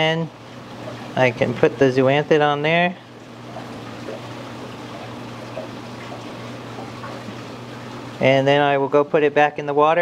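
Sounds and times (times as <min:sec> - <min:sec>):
running water: 0:00.0 - 0:10.0.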